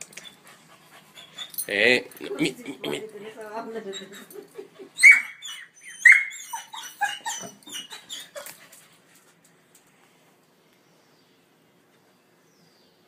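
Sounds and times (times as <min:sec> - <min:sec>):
small dog yelping: 0:05.0 - 0:08.6.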